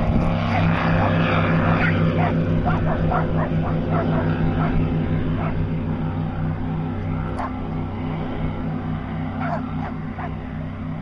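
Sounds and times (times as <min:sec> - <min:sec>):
speedboat engine drone: 0:00.0 - 0:11.0
dog barking: 0:00.5 - 0:04.8, 0:05.4 - 0:05.6, 0:07.4 - 0:07.6, 0:09.4 - 0:10.4.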